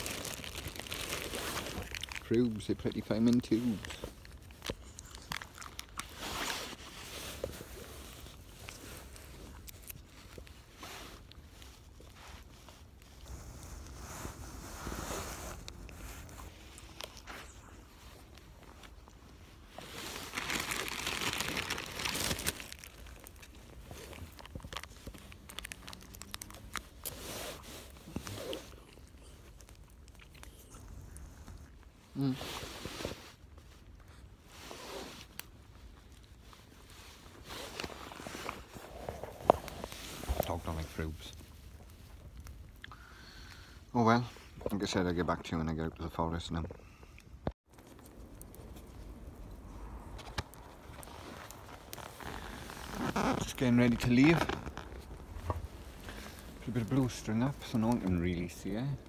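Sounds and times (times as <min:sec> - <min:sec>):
rustling at microphone: 0:00.0 - 0:42.7, 0:47.7 - 0:59.0.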